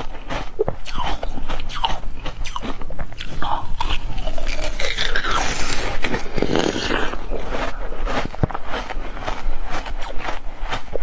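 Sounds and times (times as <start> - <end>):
chewing and biting: 0.0 - 11.0.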